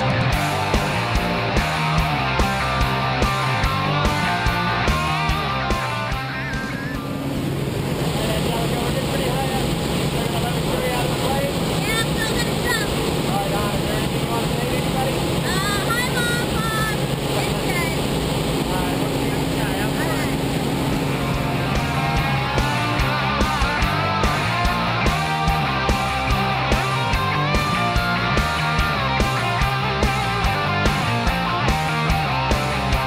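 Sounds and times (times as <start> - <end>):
rock music: 0.0 - 7.8, 19.2 - 33.0
light aircraft engine drone: 0.0 - 33.0
air rushing in cabin: 2.6 - 31.8.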